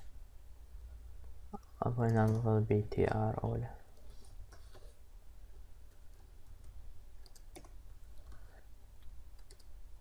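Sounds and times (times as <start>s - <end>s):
low steady hum: 0.0s - 10.0s
computer keyboard typing: 1.6s - 2.5s, 5.9s - 8.4s, 9.4s - 9.8s.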